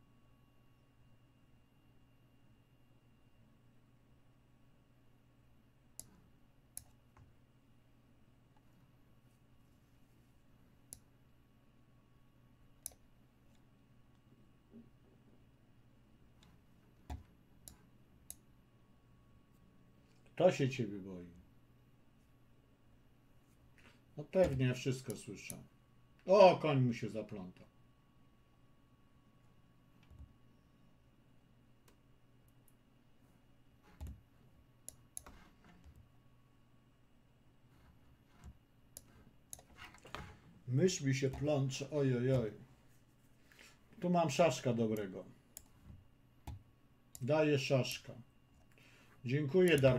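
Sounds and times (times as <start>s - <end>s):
faint steady hum: 0.0s - 49.9s.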